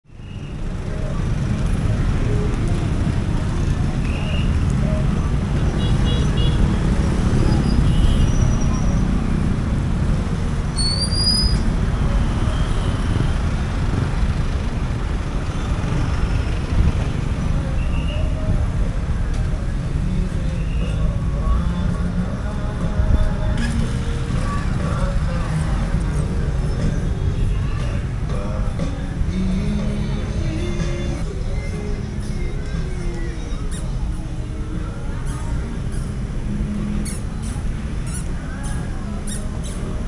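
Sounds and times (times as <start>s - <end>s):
road traffic rumble: 0.0s - 40.0s
faint voices: 17.0s - 40.0s.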